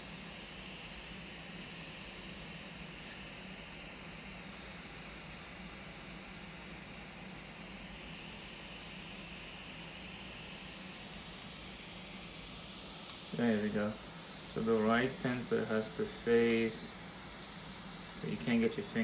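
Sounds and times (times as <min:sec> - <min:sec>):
background whir and hiss: 0:00.0 - 0:19.0.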